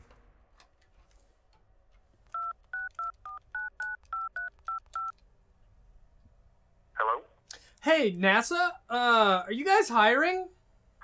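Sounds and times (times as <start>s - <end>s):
two-tone keypad beeps: 2.4s - 5.1s.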